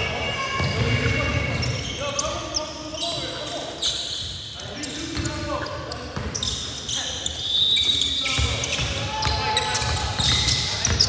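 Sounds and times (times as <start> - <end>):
high squeal: 0.0 - 11.0
shoe squeaks: 0.0 - 11.0.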